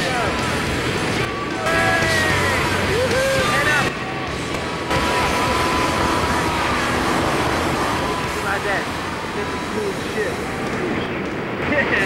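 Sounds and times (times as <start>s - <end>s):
steady rush of air noise: 0.0s - 12.0s.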